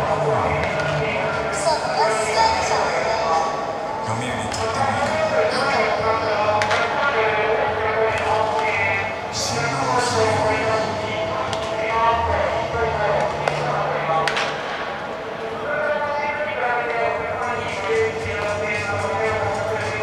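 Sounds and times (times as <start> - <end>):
voices calling and talking: 0.0 - 20.0.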